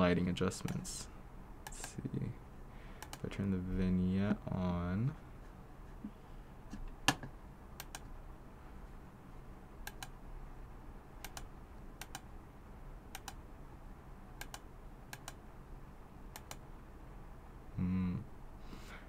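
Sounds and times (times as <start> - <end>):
computer mouse clicks: 1.6 - 2.0, 3.0 - 3.2, 7.8 - 8.1, 9.8 - 10.2, 11.2 - 12.3, 13.1 - 13.4, 14.4 - 15.4, 16.3 - 16.6.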